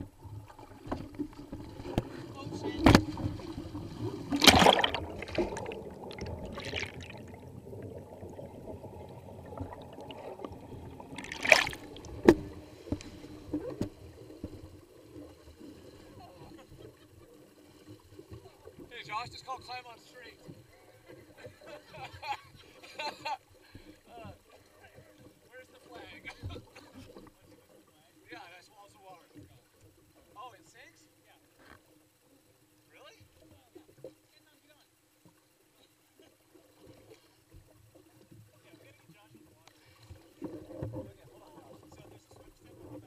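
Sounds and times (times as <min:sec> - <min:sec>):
water lapping and splashing: 0:00.0 - 0:21.6
faint steady hum: 0:00.0 - 0:43.0.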